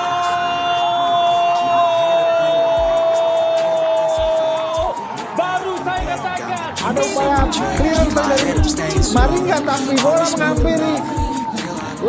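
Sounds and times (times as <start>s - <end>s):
background music: 0.0s - 12.0s
commentator's long goal shout: 0.0s - 12.0s.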